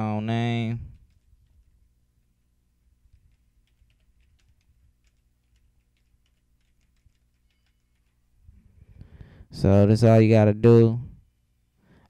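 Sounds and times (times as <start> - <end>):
keyboard typing: 0.9 - 2.4, 3.0 - 8.4.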